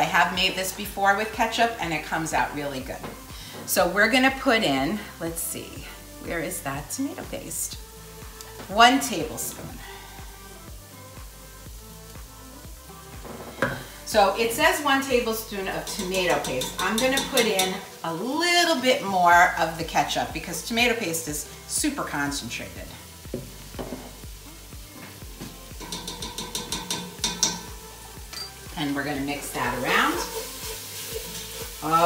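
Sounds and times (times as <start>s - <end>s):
background music with steady beat: 0.0s - 32.0s
frying pan sizzle: 0.0s - 32.0s
spoon clicking and scraping pot: 15.8s - 17.9s, 25.8s - 28.6s.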